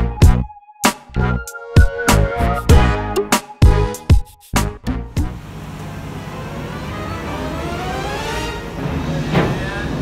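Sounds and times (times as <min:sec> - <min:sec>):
bus engine accelerating: 0:05.0 - 0:10.0.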